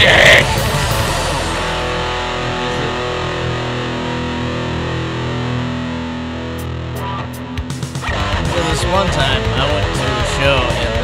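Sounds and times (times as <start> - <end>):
distorted electric guitar chord: 0.0 - 11.0.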